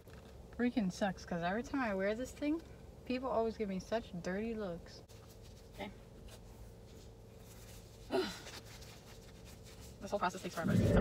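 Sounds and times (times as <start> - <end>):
steady faint hum: 0.0 - 11.0
faint rustling of handling: 5.0 - 10.6
person sighing: 8.1 - 8.5.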